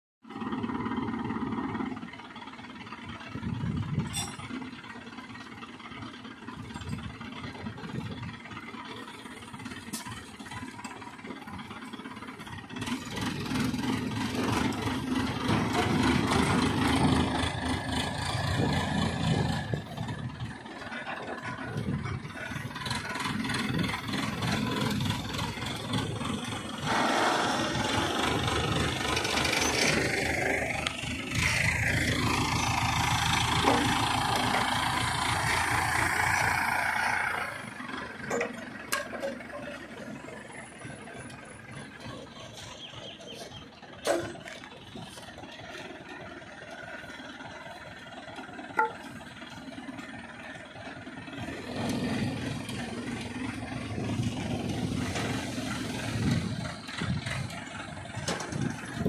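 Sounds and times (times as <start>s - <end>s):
crane diesel engine revving: 0.2s - 59.0s.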